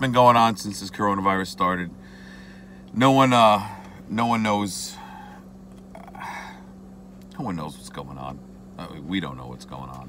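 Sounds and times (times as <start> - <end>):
low hum inside car: 0.0 - 10.0
man exhaling: 2.0 - 2.8, 4.9 - 6.8.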